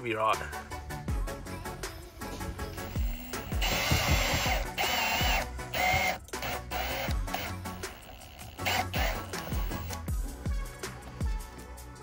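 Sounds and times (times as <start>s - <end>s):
background music with steady beat: 0.0s - 12.0s
cordless drill whining: 2.7s - 10.1s.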